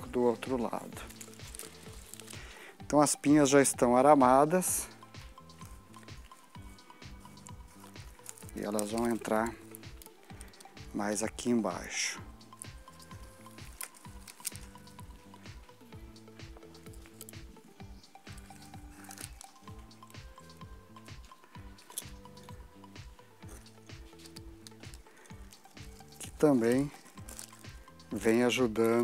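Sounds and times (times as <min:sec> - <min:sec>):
pine cones and sprigs rustling: 0:00.0 - 0:29.0
soft background music: 0:00.0 - 0:29.0.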